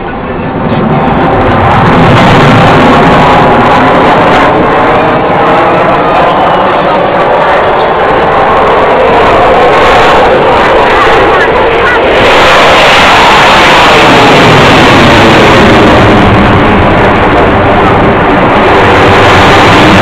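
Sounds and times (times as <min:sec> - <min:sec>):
loud jet engine noise: 0:00.0 - 0:20.0
voices: 0:03.2 - 0:13.4.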